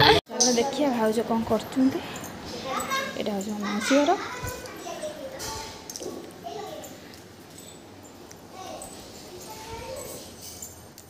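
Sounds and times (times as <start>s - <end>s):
children calling and chattering: 0.0s - 10.9s.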